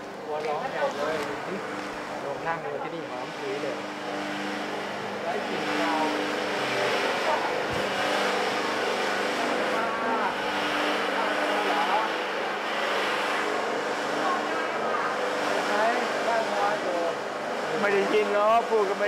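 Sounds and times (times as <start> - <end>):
fan whooshing with motor hum: 0.0 - 19.0.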